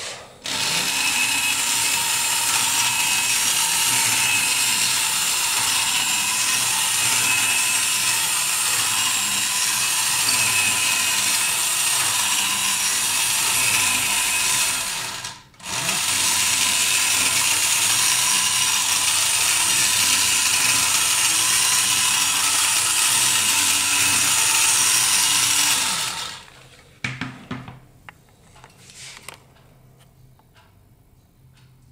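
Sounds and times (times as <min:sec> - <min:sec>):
toy robot motor whirring: 0:00.0 - 0:26.5.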